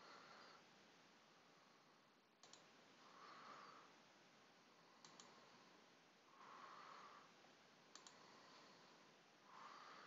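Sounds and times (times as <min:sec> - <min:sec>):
faint steady hiss: 0:00.0 - 0:10.0
computer mouse double click: 0:02.4 - 0:02.7, 0:07.9 - 0:08.2.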